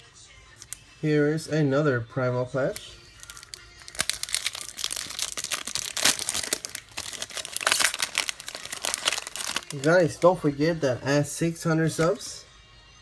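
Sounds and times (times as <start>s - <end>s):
foil wrapper crinkling and tearing: 2.7s - 10.4s.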